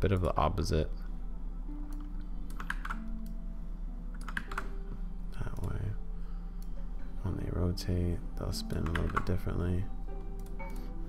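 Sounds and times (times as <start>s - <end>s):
steady low hum: 0.0s - 11.0s
computer keyboard keystrokes: 1.9s - 3.4s, 4.2s - 4.7s, 8.8s - 9.3s.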